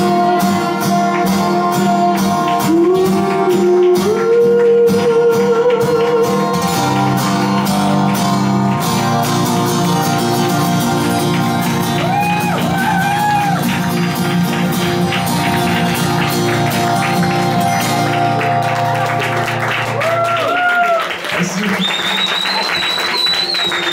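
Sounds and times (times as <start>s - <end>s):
acoustic guitars strumming: 0.0s - 20.1s
audience clapping: 0.0s - 23.9s
long high whistle: 21.8s - 23.9s.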